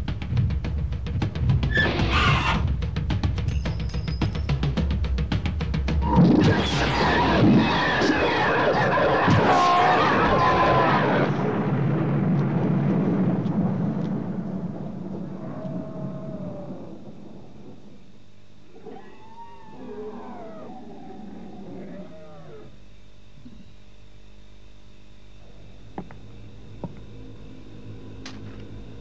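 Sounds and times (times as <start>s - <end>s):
creature wailing: 6.1s - 11.5s, 15.4s - 17.4s, 18.7s - 22.8s
creature roaring: 6.1s - 11.6s, 15.2s - 18.0s, 18.7s - 22.8s.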